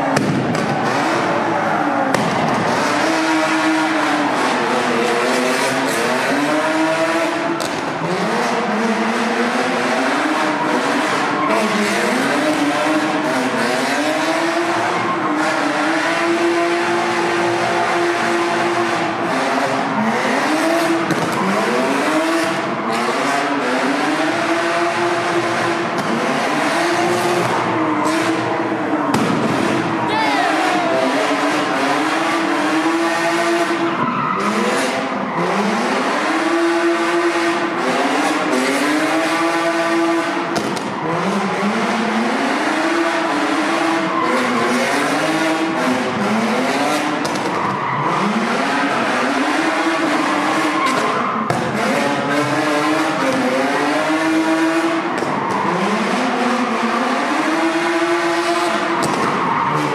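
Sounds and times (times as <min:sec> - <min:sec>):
car engine revving: 0:00.0 - 0:59.9
tires squealing on pavement: 0:00.0 - 0:59.9.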